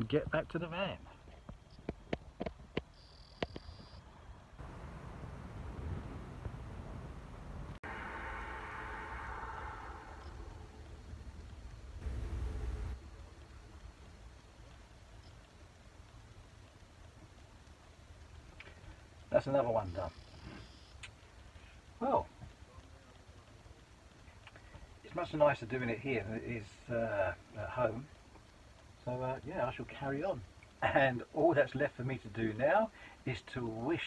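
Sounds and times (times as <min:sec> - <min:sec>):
faint hiss: 0:00.0 - 0:34.0
low rumble: 0:04.5 - 0:18.4.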